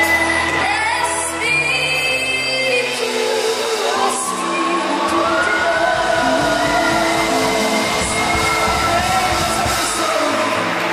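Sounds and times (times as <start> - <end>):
gospel worship music: 0.0 - 10.9.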